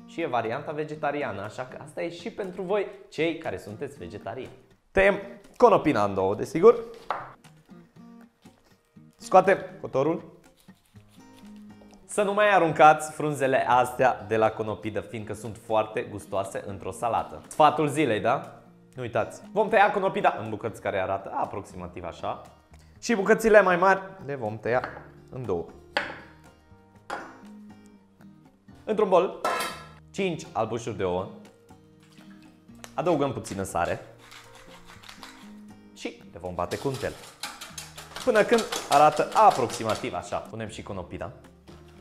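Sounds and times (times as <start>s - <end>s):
soft background music: 0.0s - 42.0s
knife crunching through cauliflower: 10.5s - 11.8s, 34.1s - 35.6s, 36.7s - 40.1s.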